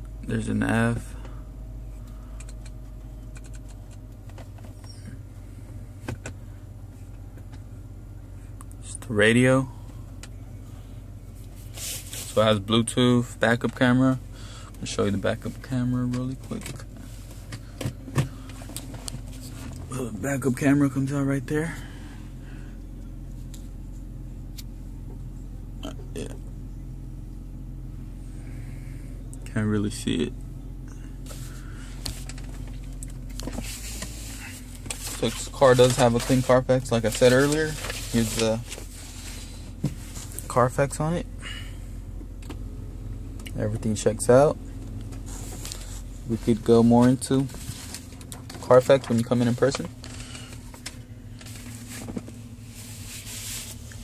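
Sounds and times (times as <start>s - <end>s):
car cabin hum: 0.0s - 54.0s.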